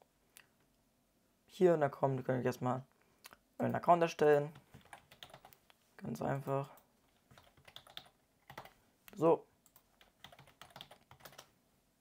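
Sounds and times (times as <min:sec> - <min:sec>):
faint keyboard typing: 0:04.4 - 0:11.6.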